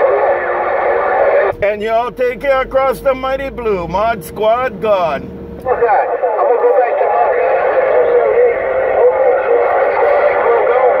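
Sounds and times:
garbled voices over cb radio: 0.0s - 4.8s, 5.6s - 11.0s.

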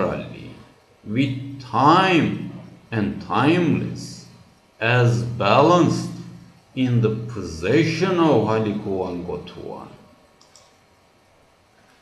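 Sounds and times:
faint click: 10.4s - 10.8s.

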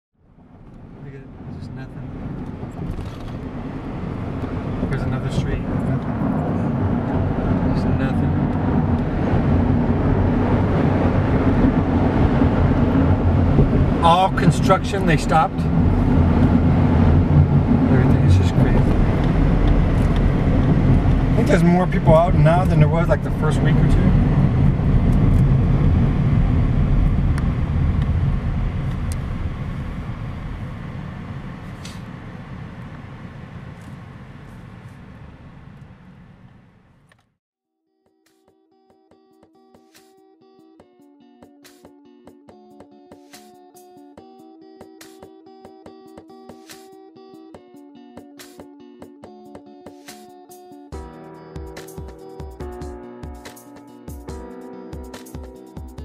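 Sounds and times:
car engine and tyre rumble: 0.2s - 37.4s.

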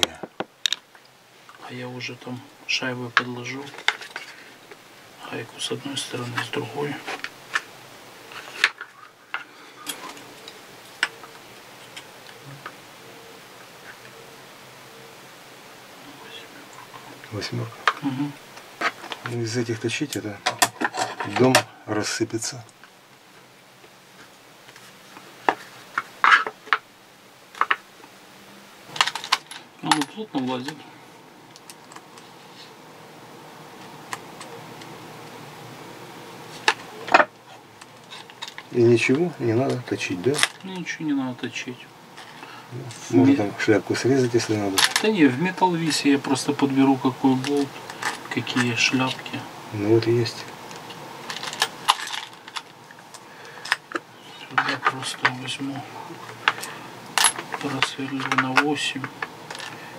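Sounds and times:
faint steady hiss: 0.0s - 59.9s.

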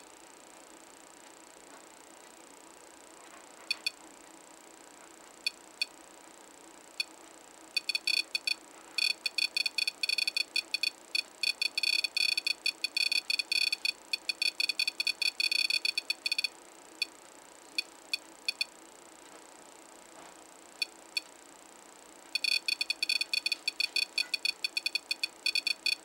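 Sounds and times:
buzzer beeping in high chirps: 3.7s - 4.0s, 7.7s - 17.1s, 17.8s - 18.7s, 22.4s - 26.0s.

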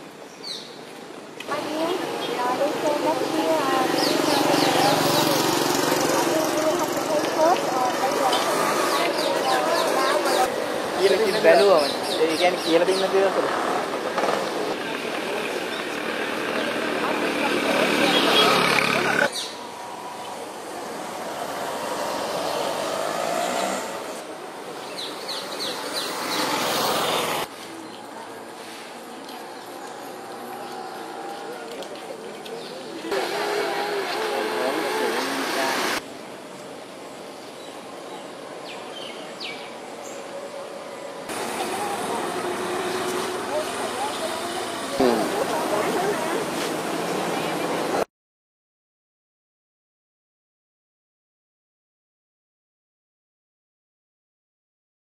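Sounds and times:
road traffic: 0.0s - 48.1s
indistinct voices: 1.4s - 15.7s, 29.1s - 36.0s, 41.3s - 48.1s
people talking at once: 43.4s - 46.6s.

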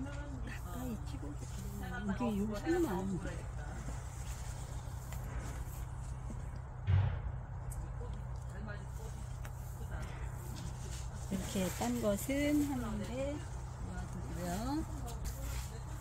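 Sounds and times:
low background rumble: 0.0s - 16.0s
low thump: 6.8s - 7.9s.

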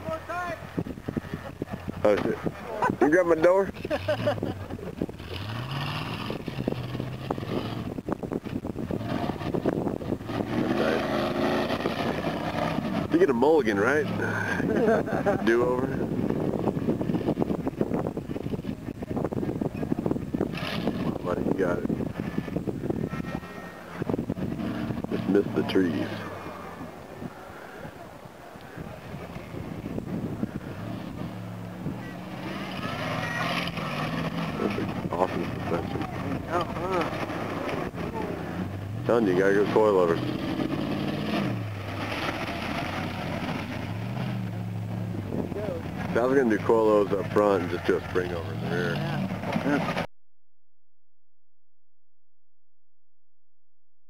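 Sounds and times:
buggy engine revving under load: 0.7s - 50.1s.

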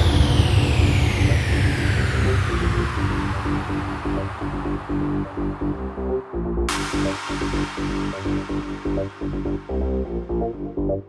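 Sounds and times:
falling synth sweep: 0.0s - 10.4s
low rumbling bass: 0.0s - 11.0s.

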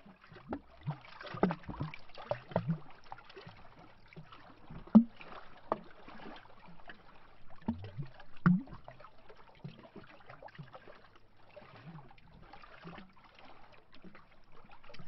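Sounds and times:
lake waves lapping against tree trunk: 0.0s - 15.0s.

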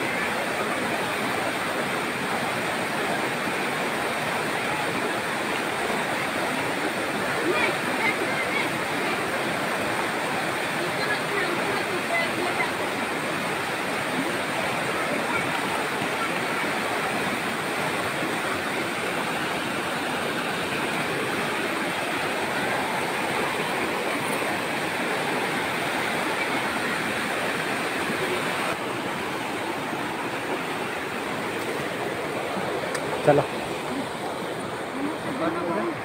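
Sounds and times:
rushing river in flood: 0.0s - 36.0s.

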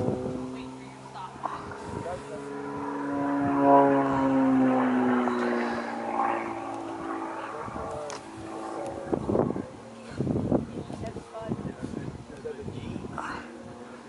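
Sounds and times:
propeller airplane passing by: 0.0s - 14.0s.

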